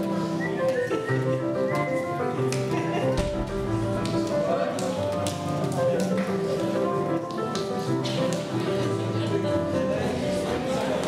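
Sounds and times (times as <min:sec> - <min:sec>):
instrumental music with held notes: 0:00.0 - 0:11.0.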